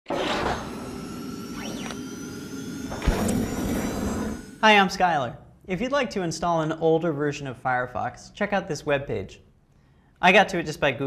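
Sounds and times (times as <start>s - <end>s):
steady electronic tones: 0.2s - 5.0s.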